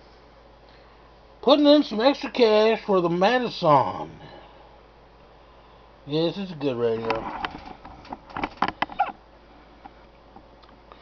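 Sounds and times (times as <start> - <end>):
faint low hum and hiss: 0.0 - 11.0.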